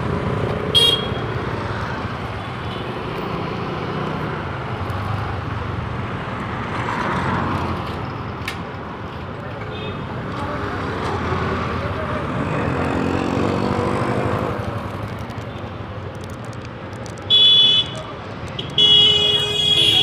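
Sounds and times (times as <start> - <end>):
street traffic: 0.0 - 20.0
vehicle horn honking: 0.7 - 1.2, 17.3 - 18.0, 18.6 - 20.0.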